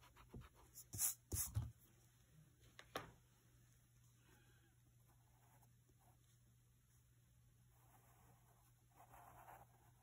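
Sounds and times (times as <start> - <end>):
pencil scratching on paper: 0.0 - 1.7, 7.7 - 10.0.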